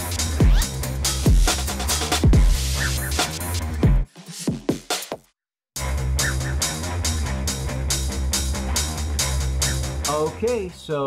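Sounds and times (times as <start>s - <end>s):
music with drum beat and bass: 0.0s - 10.9s.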